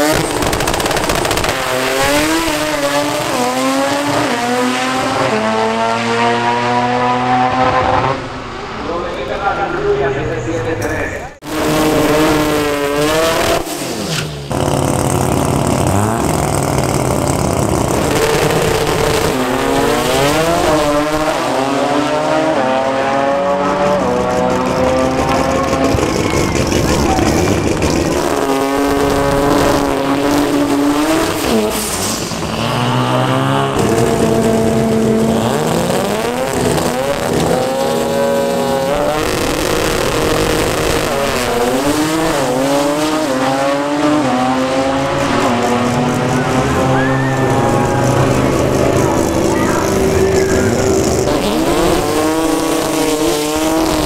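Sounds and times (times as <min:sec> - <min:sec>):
spinning tyres hissing: 0:00.0 - 0:04.2, 0:11.5 - 0:21.4, 0:23.5 - 0:54.0
car engines revving hard: 0:00.0 - 0:54.0.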